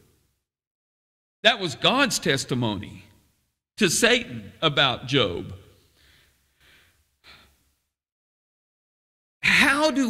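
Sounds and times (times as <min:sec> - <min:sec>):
man breathing faintly: 0:05.8 - 0:07.8.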